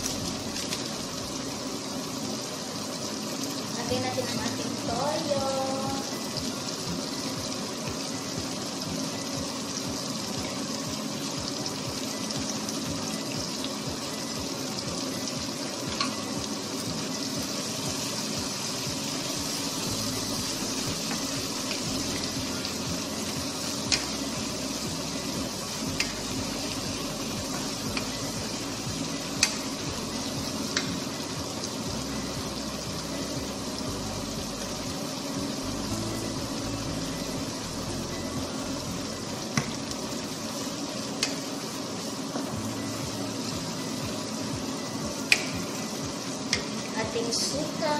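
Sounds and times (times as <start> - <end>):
food sizzling in a frying pan: 0.0 - 47.9.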